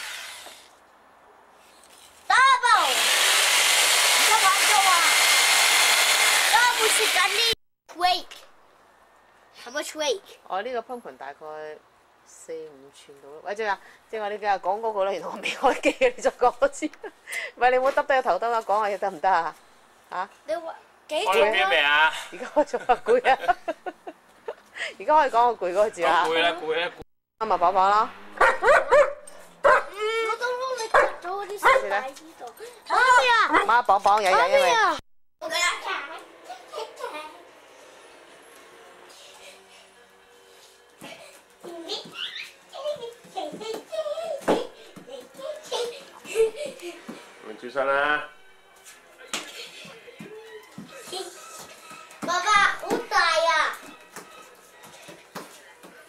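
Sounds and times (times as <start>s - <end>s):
electric jigsaw sawing pumpkin: 0.0s - 0.7s, 2.6s - 7.6s.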